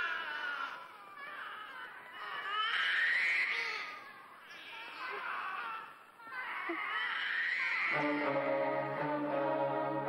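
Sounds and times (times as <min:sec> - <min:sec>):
baby crying: 0:00.0 - 0:08.2.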